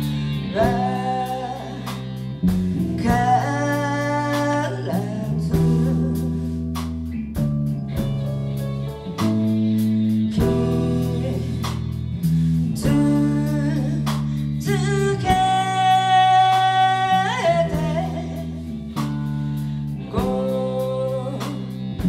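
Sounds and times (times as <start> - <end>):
person singing: 0.0 - 6.7, 9.1 - 22.0
electric guitars and keyboard chords: 0.0 - 22.0.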